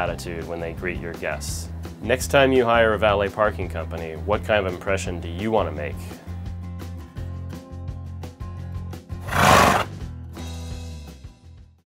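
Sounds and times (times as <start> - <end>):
background music: 0.0 - 11.8
horse whinny: 9.2 - 9.9.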